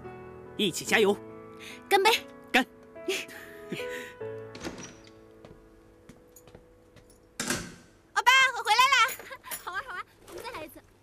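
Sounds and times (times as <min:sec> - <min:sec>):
soft background music: 0:00.0 - 0:08.9
loud door thump: 0:04.5 - 0:05.0.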